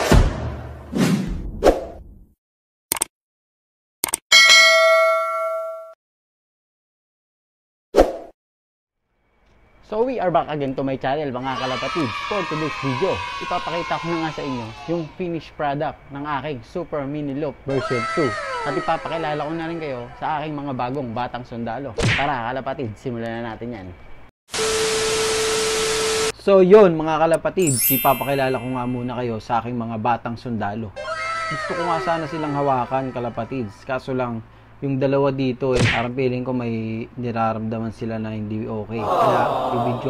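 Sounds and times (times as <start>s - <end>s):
notification bell ding: 4.3s - 6.0s, 27.6s - 29.2s
steady beep tone: 27.6s - 29.1s.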